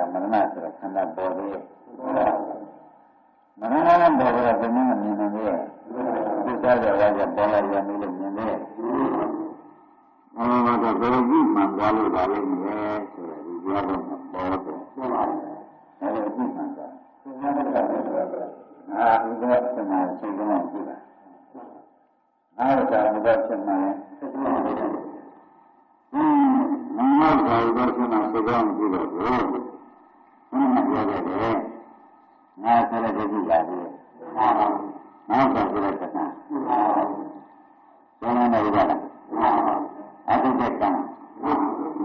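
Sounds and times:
man speaking: 0:00.0 - 0:02.8, 0:03.6 - 0:09.6, 0:10.4 - 0:21.8, 0:22.6 - 0:25.4, 0:26.2 - 0:29.9, 0:30.5 - 0:32.0, 0:32.6 - 0:37.6, 0:38.2 - 0:42.0
man preaching: 0:00.0 - 0:03.0, 0:03.6 - 0:09.7, 0:10.4 - 0:21.8, 0:22.6 - 0:25.4, 0:26.2 - 0:32.0, 0:32.6 - 0:42.0
faint steady whine: 0:00.0 - 0:42.0.

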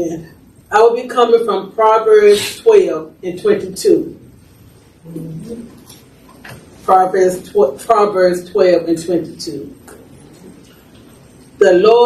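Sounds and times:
person speaking: 0:00.0 - 0:12.0
person humming: 0:05.1 - 0:05.6.

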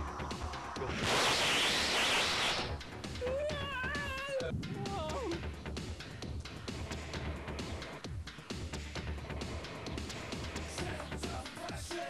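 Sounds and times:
loud static hiss: 0:00.8 - 0:03.0.

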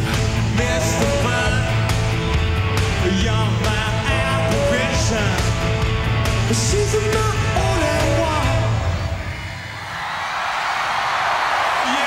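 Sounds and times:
rock band playing: 0:00.0 - 0:09.4
crowd cheering and applauding: 0:08.6 - 0:12.0.

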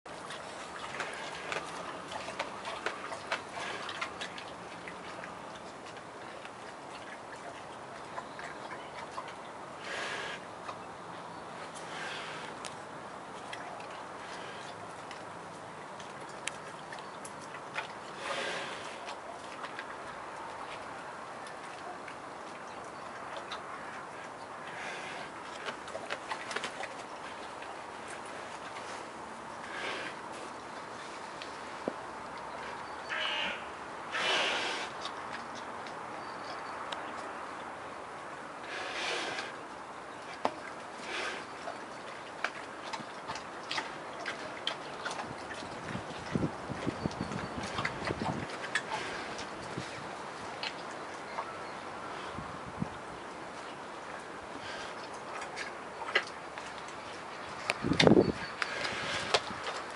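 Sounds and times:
crow cawing: 0:33.0 - 0:33.7.

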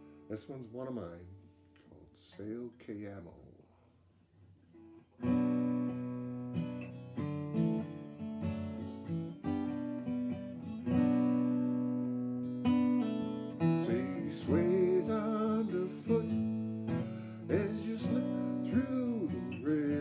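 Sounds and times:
acoustic guitar strummed chords: 0:05.2 - 0:20.0.

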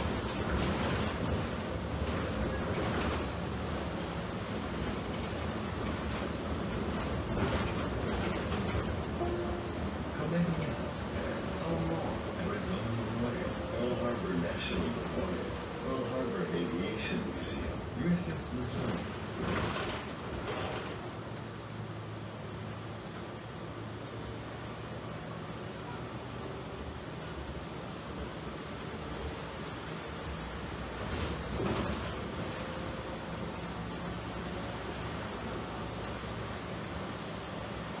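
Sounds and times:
bus drivetrain and road rumble: 0:00.0 - 0:38.0.

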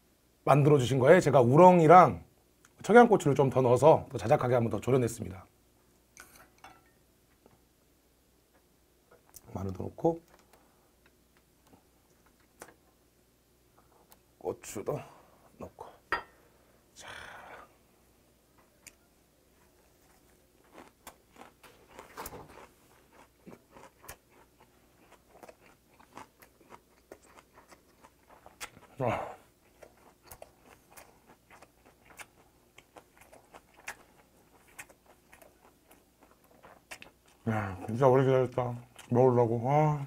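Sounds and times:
close-up wet chewing: 0:19.6 - 0:39.4.

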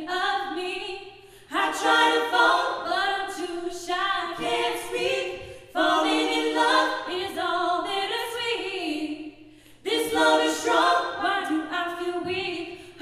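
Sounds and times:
vocal ensemble singing in harmony: 0:00.0 - 0:13.0.

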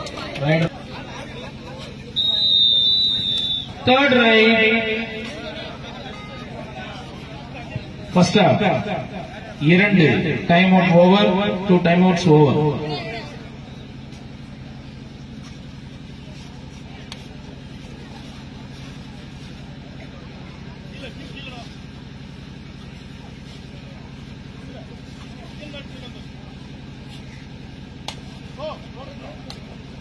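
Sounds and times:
faint distant voices: 0:12.8 - 0:30.0.

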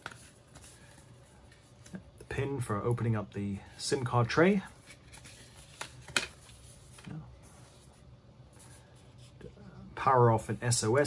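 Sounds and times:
paper rustling: 0:04.4 - 0:08.0.

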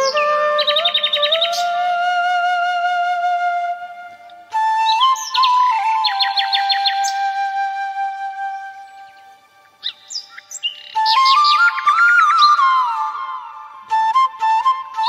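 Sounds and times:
birds chirping: 0:00.0 - 0:01.9, 0:04.8 - 0:07.5, 0:08.6 - 0:13.0
flute melody: 0:00.0 - 0:15.0.

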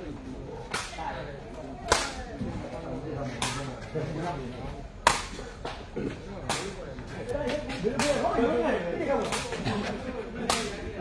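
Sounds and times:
faint crowd chatter: 0:00.0 - 0:11.0.

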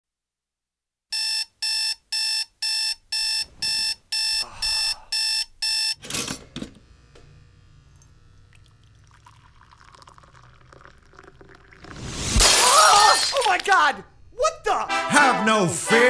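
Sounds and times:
alarm clock beeping: 0:01.1 - 0:06.0.

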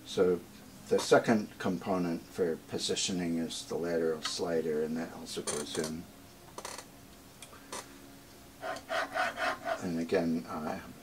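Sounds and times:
rasping metal-on-metal rubs: 0:08.6 - 0:10.0.

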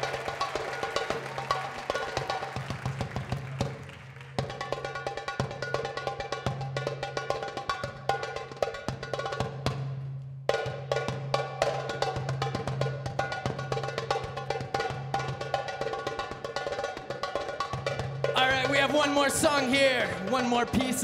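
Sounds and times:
goblet drum played by hand: 0:00.0 - 0:21.0.

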